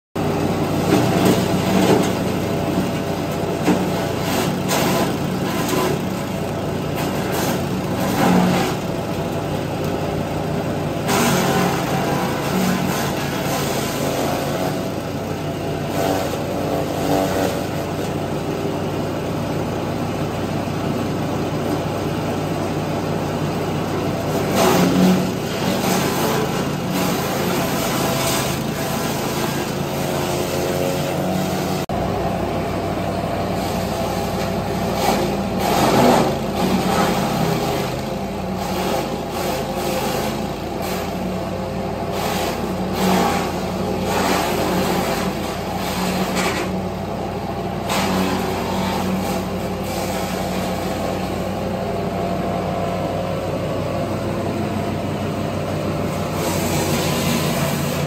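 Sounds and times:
garden shredder engine running: 0.2 - 58.0.

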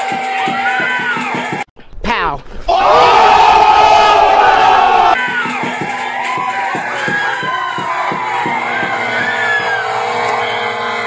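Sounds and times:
crowd shouting: 0.0 - 1.7, 2.7 - 11.0.

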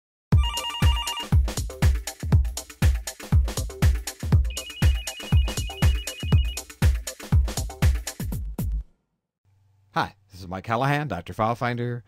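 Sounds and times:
electronic theme music: 0.4 - 1.4, 4.4 - 6.8
kick-drum beat: 3.8 - 8.8.

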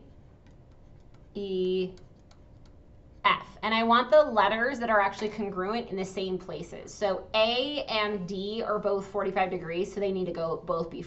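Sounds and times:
stylus tapping on tablet screen: 0.4 - 2.9.

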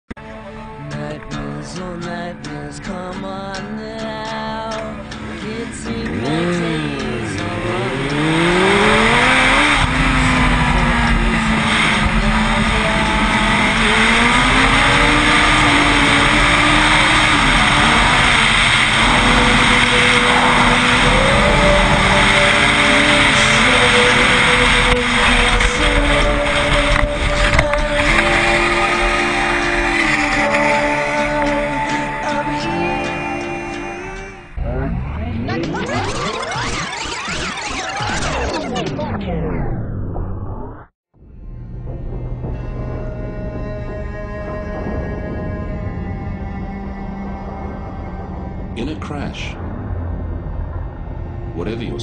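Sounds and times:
motorcycle engines revving: 4.3 - 39.0.

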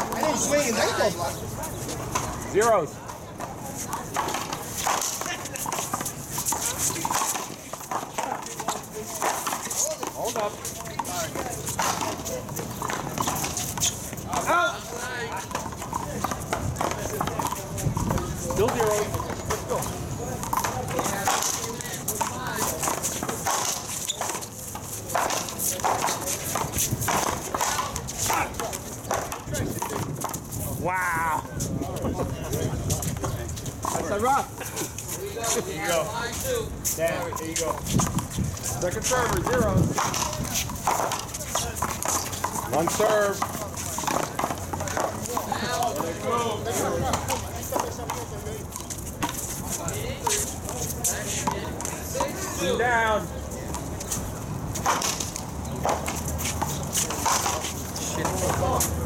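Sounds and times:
spectators talking: 0.0 - 59.0.

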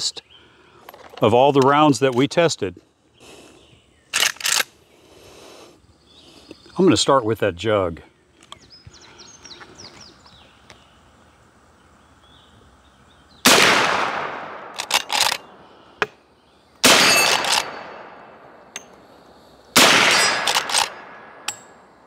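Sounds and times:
rifle shots: 13.4 - 15.6, 16.8 - 18.4, 19.7 - 21.6
metallic ring of steel target: 16.9 - 18.9, 19.9 - 21.9.

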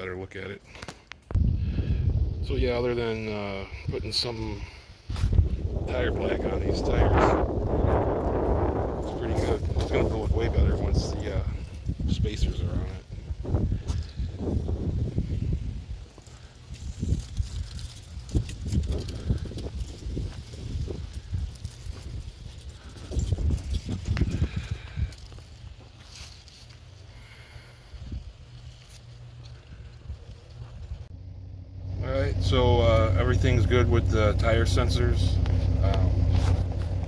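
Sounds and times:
wind buffeting microphone: 1.3 - 26.0, 27.3 - 28.6
footsteps on asphalt: 13.6 - 15.0, 16.0 - 31.0, 35.4 - 37.0.

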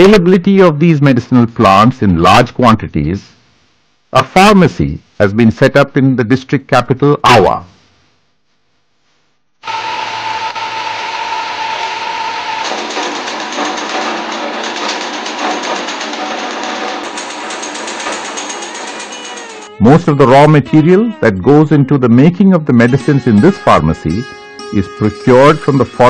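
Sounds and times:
machine whirring: 9.6 - 20.2
high tone: 17.0 - 26.0.

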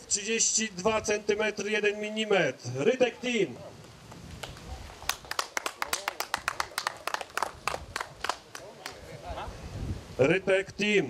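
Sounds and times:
people clapping: 4.1 - 9.1.

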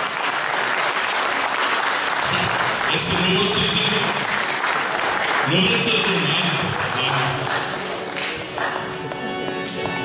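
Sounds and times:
audience applause: 0.0 - 9.8
man speaking: 2.3 - 4.2, 5.5 - 7.5.

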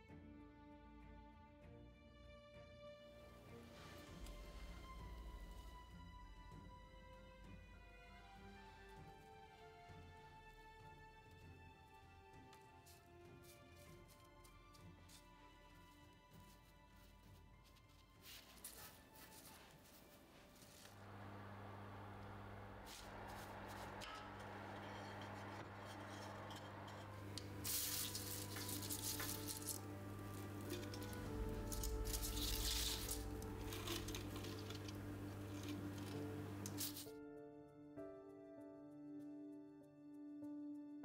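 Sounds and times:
soft background music: 0.0 - 41.0
dried plants rustling on baking sheet: 12.8 - 37.1
steady low hum: 20.4 - 28.9.

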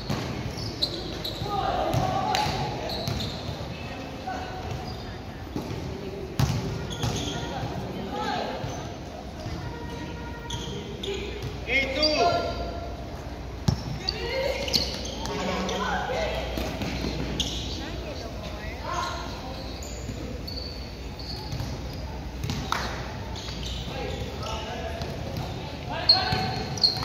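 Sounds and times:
basketballs bouncing on court: 0.0 - 3.8, 4.6 - 7.8, 21.4 - 27.0
players shouting in echoing hall: 0.8 - 4.6.

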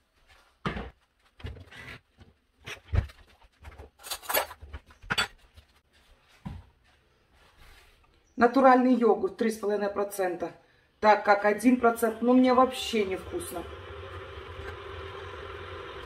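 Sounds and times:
kitchen items knocking and clicking: 2.7 - 5.7.

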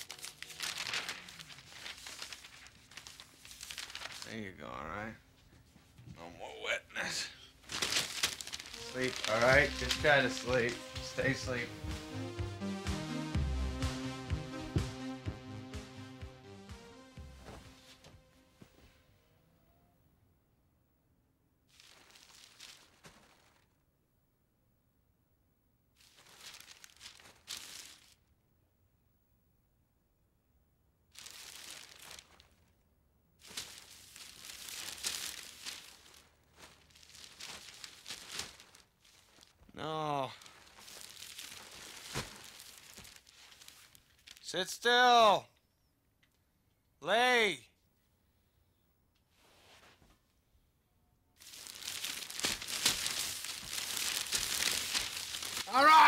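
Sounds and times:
rustling crinkling handling noise: 0.0 - 4.6, 7.6 - 12.0, 21.7 - 23.8, 26.0 - 28.3, 31.1 - 32.8, 33.4 - 44.5, 51.4 - 56.0.

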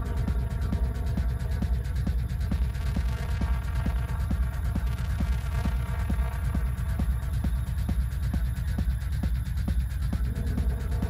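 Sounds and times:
techno music: 0.0 - 11.0.

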